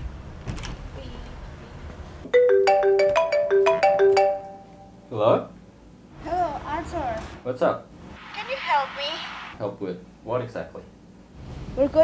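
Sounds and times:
marimba-like phone ringtone: 2.3 - 5.0.

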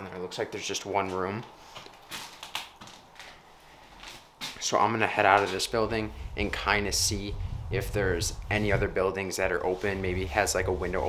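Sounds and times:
soft taps and rustles: 1.0 - 5.8.

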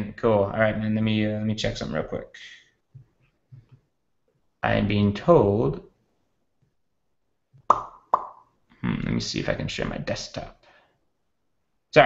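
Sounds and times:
mouth pop: 7.7 - 8.5.

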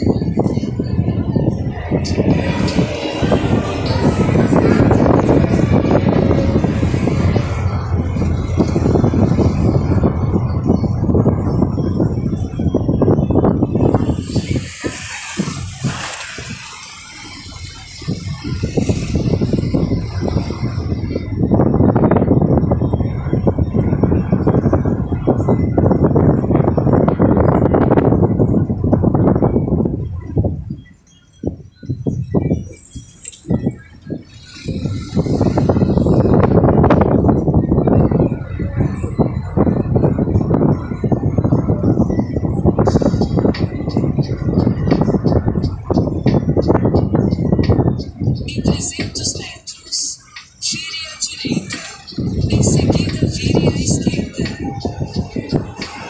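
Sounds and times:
vehicle road and wind noise: 0.0 - 56.0.

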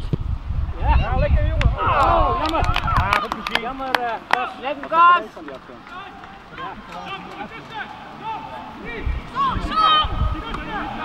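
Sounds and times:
voices calling and shouting: 0.6 - 11.0.

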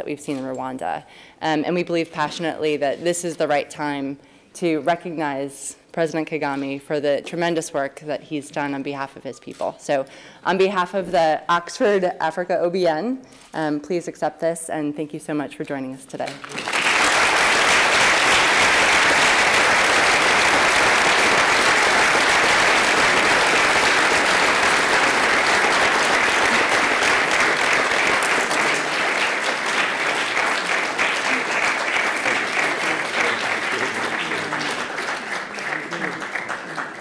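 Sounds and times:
audience applauding: 16.4 - 37.0.

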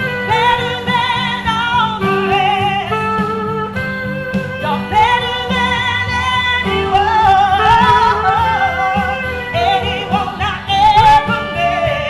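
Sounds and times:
woman singing with vibrato: 0.0 - 3.7, 4.4 - 12.0
saxophone: 0.0 - 12.0
steady beat: 0.0 - 12.0.

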